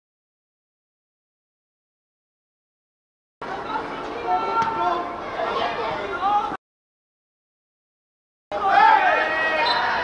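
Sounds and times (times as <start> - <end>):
players shouting: 3.5 - 6.6, 8.5 - 10.0.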